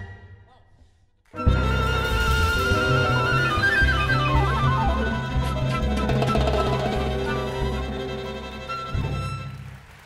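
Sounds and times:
flute melody: 0:01.4 - 0:09.7
violins: 0:01.4 - 0:09.7
bass: 0:01.4 - 0:10.0
timbales and congas: 0:03.6 - 0:09.5.

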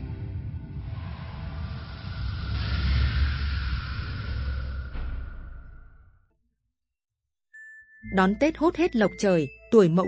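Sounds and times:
rushing whoosh: 0:00.7 - 0:06.2.

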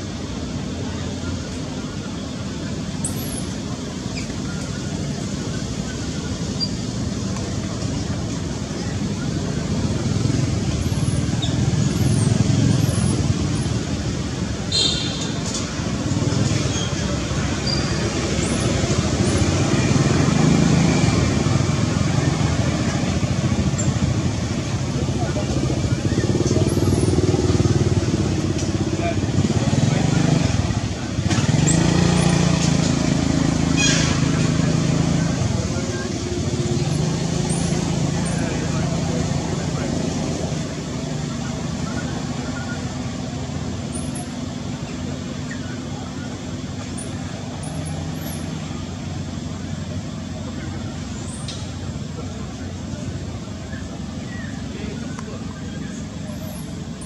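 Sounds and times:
vehicle engine running: 0:00.0 - 0:57.0.

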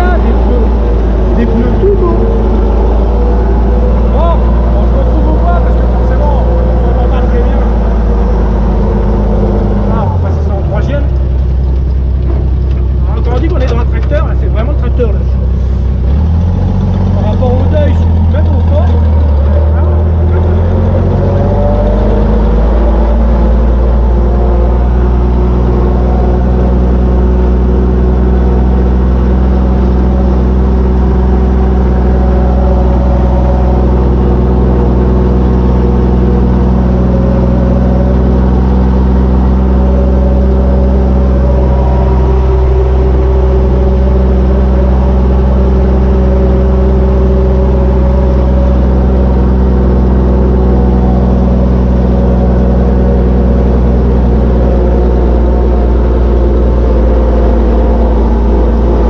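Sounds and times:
tractor engine droning: 0:00.0 - 0:59.0.

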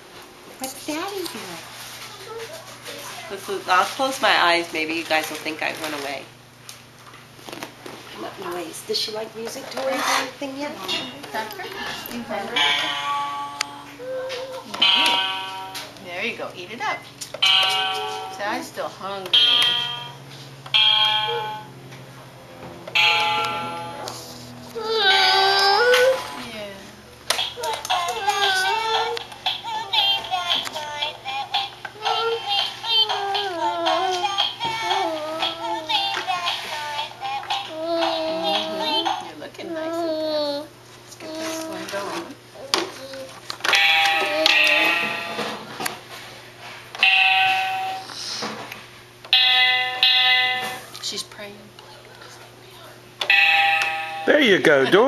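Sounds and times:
toy bell-like chimes: 0:53.3 - 0:54.6.

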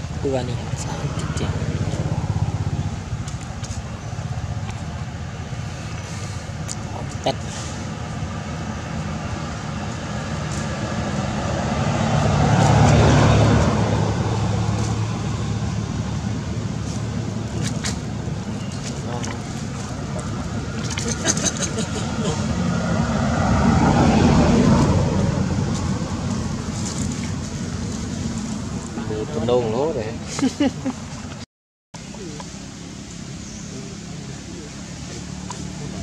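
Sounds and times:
motor vehicles passing: 0:00.0 - 0:31.4, 0:32.0 - 0:36.0.

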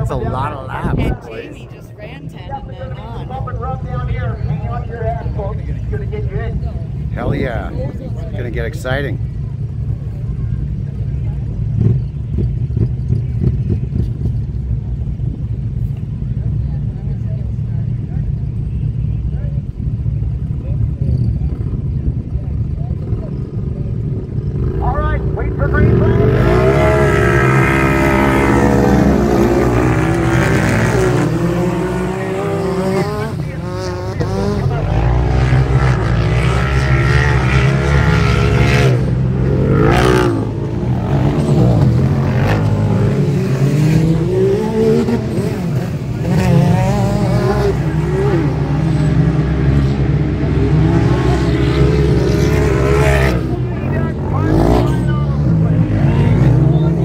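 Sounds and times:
racing engines revving: 0:00.0 - 0:57.0.

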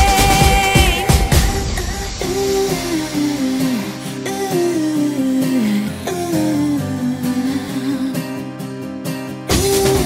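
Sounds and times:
dance music drum beat: 0:00.0 - 0:04.6, 0:09.5 - 0:10.0
descending melody: 0:00.7 - 0:06.2.

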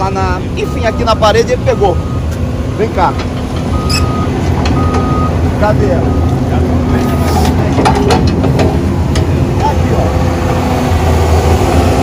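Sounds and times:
diesel engine rumbling: 0:00.0 - 0:12.0
warning alarm beeping: 0:00.6 - 0:02.3, 0:03.7 - 0:07.4.

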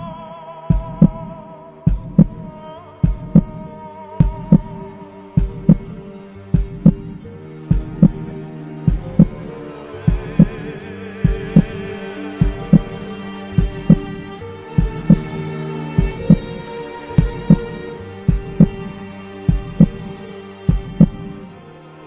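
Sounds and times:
sustained low tones: 0:00.0 - 0:21.6
heartbeat-like double thumps: 0:00.7 - 0:04.8, 0:05.4 - 0:06.0, 0:06.6 - 0:08.3, 0:08.9 - 0:13.0, 0:13.6 - 0:15.4, 0:16.0 - 0:16.6, 0:17.2 - 0:18.9, 0:19.5 - 0:21.4.

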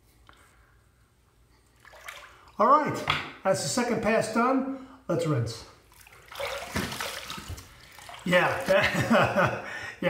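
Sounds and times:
water splashing at a sink: 0:01.8 - 0:02.6, 0:05.9 - 0:09.0.

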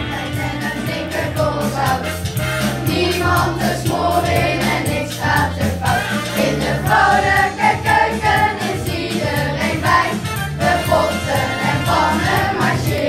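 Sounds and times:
children singing: 0:00.0 - 0:02.2, 0:02.8 - 0:13.0
instrumental accompaniment: 0:00.0 - 0:13.0.

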